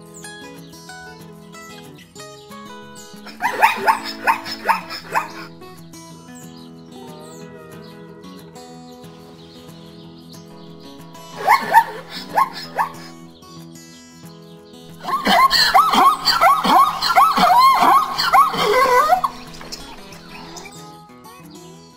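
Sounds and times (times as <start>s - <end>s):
zebra barking calls: 2.7s - 5.9s, 10.6s - 13.3s, 14.9s - 20.7s
background music with sustained chords: 2.7s - 20.8s.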